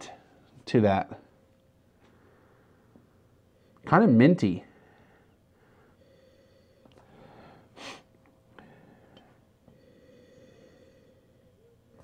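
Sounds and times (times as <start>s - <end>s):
faint steady hum: 0.0s - 12.0s
faint breathing: 1.9s - 3.8s, 4.6s - 12.0s
short sniff: 7.7s - 8.1s.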